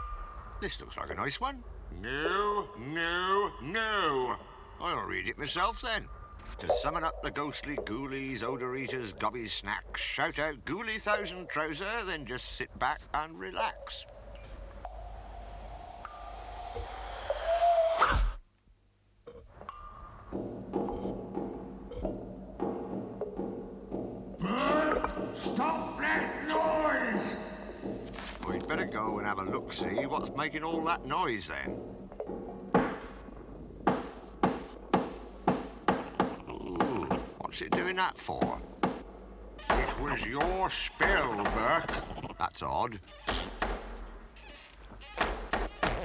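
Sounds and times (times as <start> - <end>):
wooden trapdoor banging: 20.3 - 42.2, 45.0 - 46.0.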